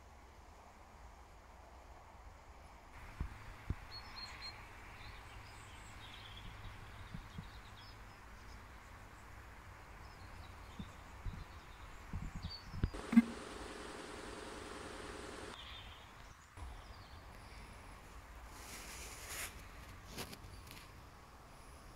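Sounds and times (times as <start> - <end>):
steady hum with hiss: 12.9 - 15.6.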